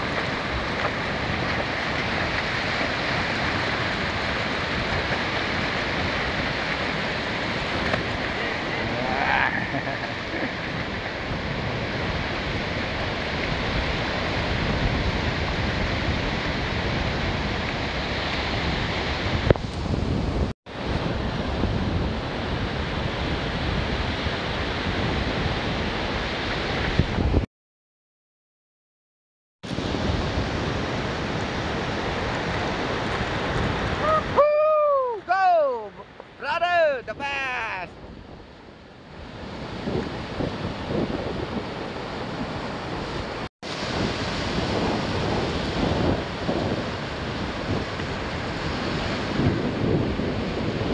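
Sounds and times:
surf breaking on beach: 0:00.0 - 0:27.4, 0:29.7 - 0:50.9
wind buffeting microphone: 0:00.0 - 0:27.4, 0:29.7 - 0:50.9.

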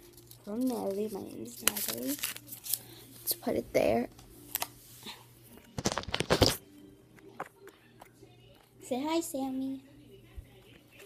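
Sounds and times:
rustling and handling noise: 0:00.0 - 0:08.7.

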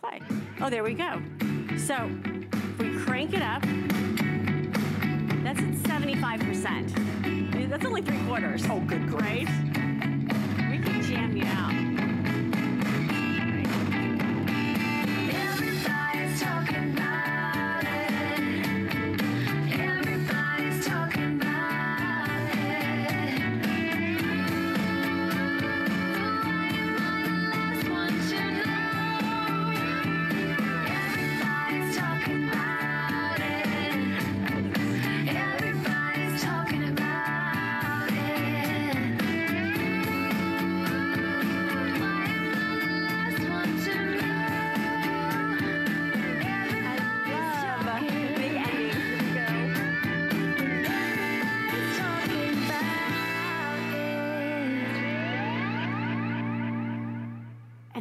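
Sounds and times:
song with singing from speaker: 0:00.0 - 0:58.0.

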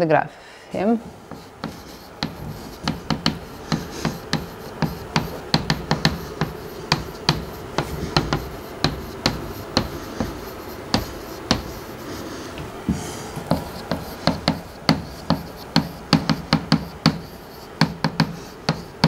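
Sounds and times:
chalk tapping on blackboard: 0:01.3 - 0:19.0.

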